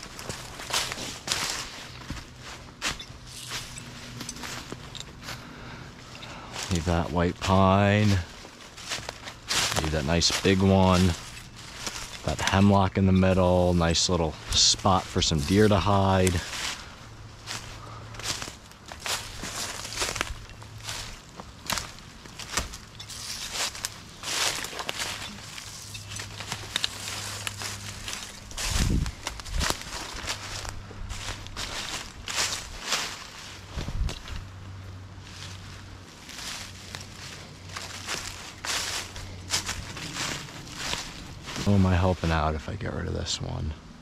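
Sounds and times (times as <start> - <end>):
footsteps crunching through dry leaves: 0.0 - 43.5.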